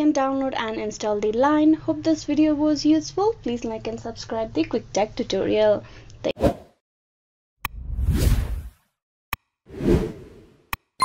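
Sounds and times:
whoosh: 7.7 - 8.8.

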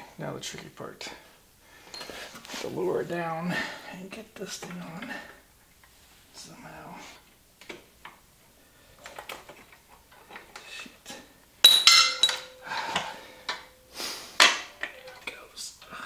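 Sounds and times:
metal parts clinking: 11.6 - 13.7
sharp metallic clank: 11.6 - 13.8.

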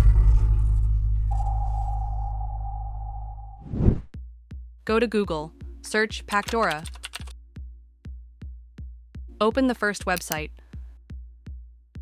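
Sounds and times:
deep bass rumble: 0.0 - 4.7
held steady tone: 1.3 - 3.6
loud swoosh: 1.3 - 4.1
soft low music beats: 4.1 - 12.0.

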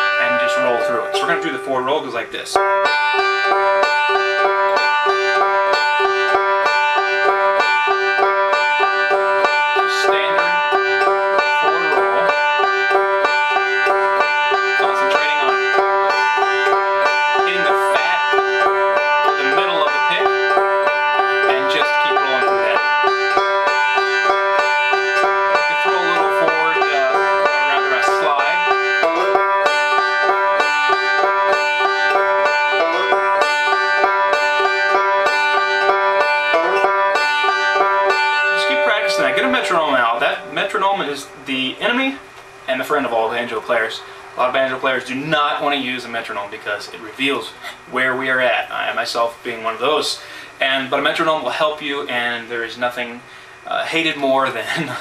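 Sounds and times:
banjo picking: 0.0 - 55.0.

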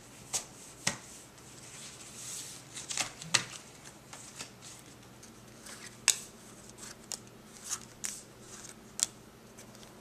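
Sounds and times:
cards ticking and sliding: 2.8 - 10.0
playing card snap: 6.0 - 6.3.

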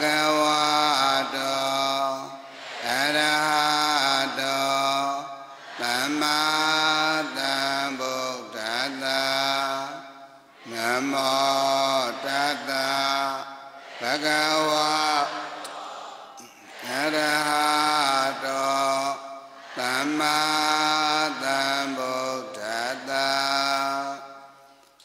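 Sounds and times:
man chanting: 0.0 - 15.7, 16.4 - 24.7.

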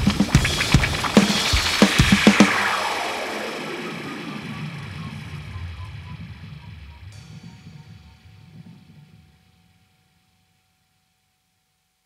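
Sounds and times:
wavering electronic rumble: 0.4 - 7.1.

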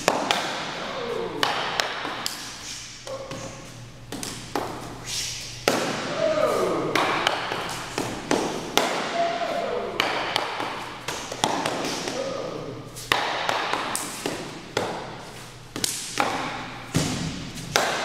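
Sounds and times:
rubber sticks striking: 5.6 - 12.4.

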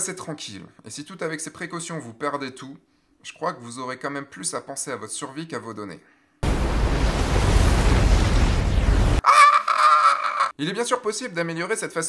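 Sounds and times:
deep noisy rumble of wave: 6.4 - 9.2
man screaming: 9.2 - 10.6.

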